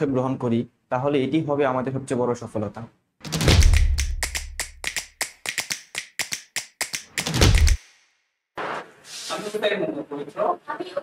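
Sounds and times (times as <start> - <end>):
sharp taps: 3.2 - 8.0.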